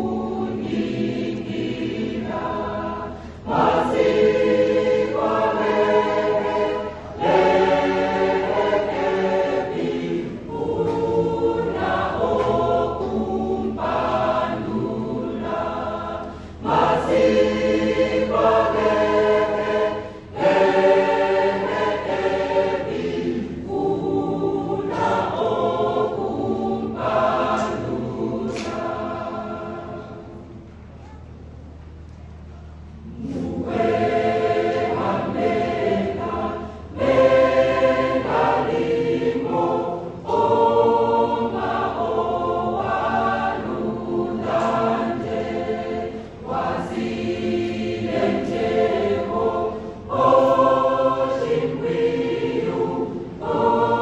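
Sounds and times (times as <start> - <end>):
mixed choir singing: 0.0 - 30.7, 33.0 - 54.0.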